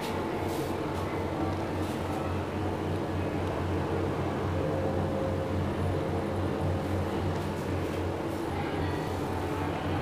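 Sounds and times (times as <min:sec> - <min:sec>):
steady low drone: 0:01.1 - 0:10.0
faint steady tone: 0:02.2 - 0:07.3.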